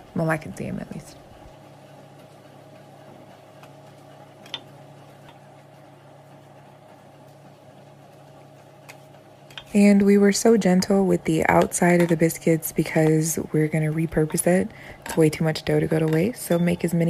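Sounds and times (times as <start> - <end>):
low background hum: 0.0 - 17.0.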